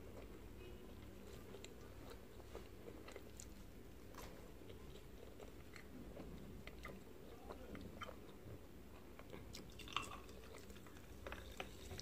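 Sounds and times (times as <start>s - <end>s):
chewing and biting food: 1.2s - 12.0s.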